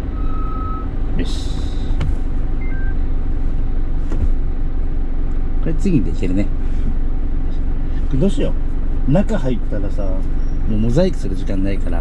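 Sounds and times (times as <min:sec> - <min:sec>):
diesel truck engine rumble: 0:00.0 - 0:12.0
short quiet beeps: 0:02.6 - 0:03.0.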